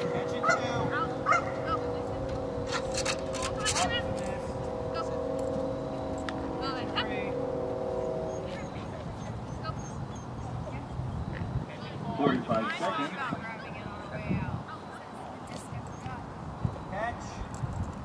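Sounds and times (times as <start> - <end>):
steady hum: 0.0 - 17.1
dog yipping and whining: 8.4 - 11.1.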